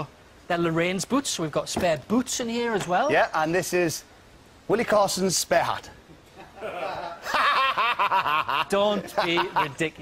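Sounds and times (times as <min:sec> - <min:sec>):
men laughing: 0:06.1 - 0:10.0.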